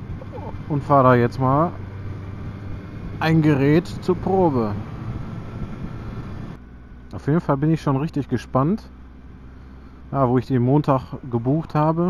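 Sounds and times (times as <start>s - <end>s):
motorcycle engine running: 0.0s - 12.0s
wind noise on microphone: 1.8s - 6.6s.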